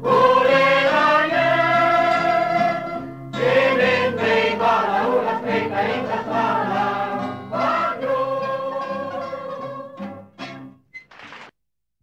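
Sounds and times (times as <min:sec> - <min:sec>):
choir singing: 0:00.0 - 0:10.1
mandolin ensemble: 0:00.1 - 0:10.9.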